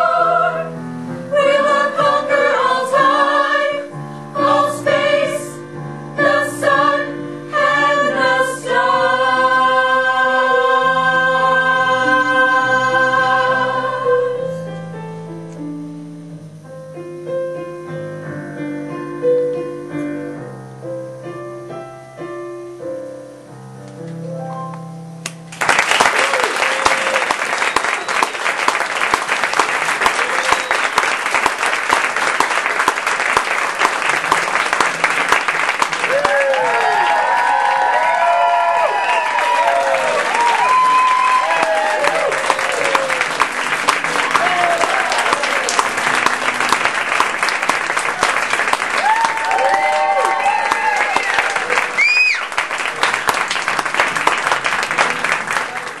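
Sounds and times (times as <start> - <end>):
audience applauding: 25.5 - 56.0
whoops and shouts: 36.1 - 43.2, 44.4 - 45.7, 49.0 - 52.5.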